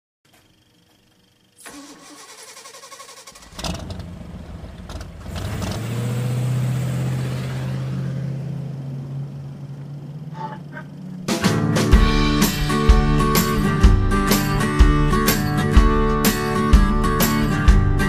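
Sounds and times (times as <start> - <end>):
engine-like low rumble: 2.8 - 17.0.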